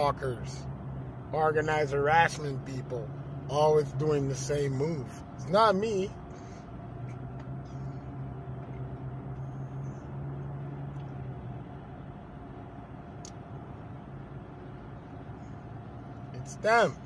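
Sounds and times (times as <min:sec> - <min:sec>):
car road noise at highway speed: 0:00.0 - 0:17.0
low hum: 0:06.1 - 0:17.0.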